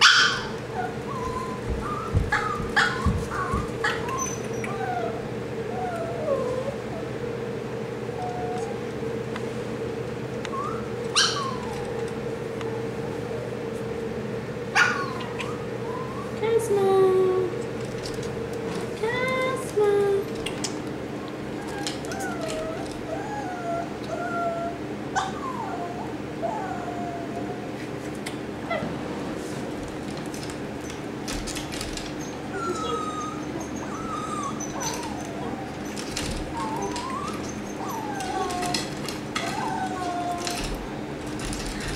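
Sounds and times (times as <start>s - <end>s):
small dog whining: 0.0s - 7.2s, 8.0s - 9.0s, 10.4s - 13.8s, 14.7s - 16.7s, 19.0s - 27.8s, 30.8s - 41.9s.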